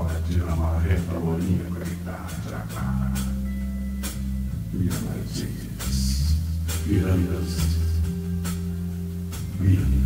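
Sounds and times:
electric guitar and bass: 0.0 - 10.0.

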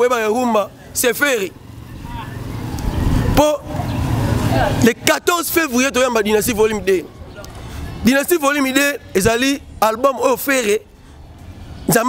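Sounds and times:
vehicle engine rumbling: 0.0 - 12.0
man's voice: 4.6 - 7.1, 8.0 - 10.9.

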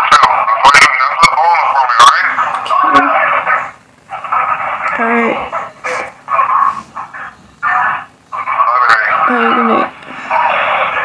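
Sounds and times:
voices over telephone line: 0.0 - 11.0.

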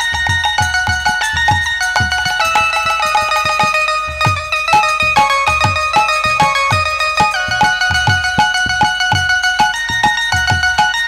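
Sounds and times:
melody of held notes: 0.0 - 11.0.

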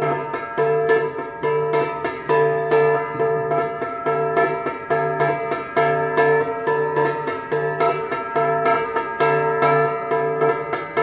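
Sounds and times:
bronze gongs struck in rhythm: 0.0 - 11.0.

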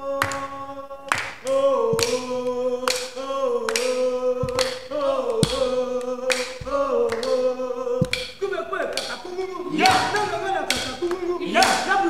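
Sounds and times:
group singing unison chant: 0.0 - 12.0
wooden sticks clacking: 2.9 - 12.0.

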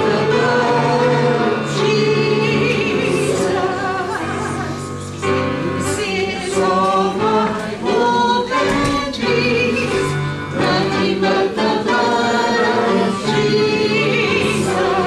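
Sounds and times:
woman singing into microphone: 0.0 - 4.8, 5.7 - 15.0
congregation singing a hymn: 0.0 - 15.0.

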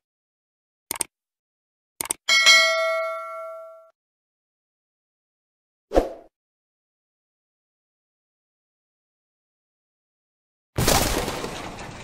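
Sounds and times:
bright bell ding: 2.3 - 3.9.

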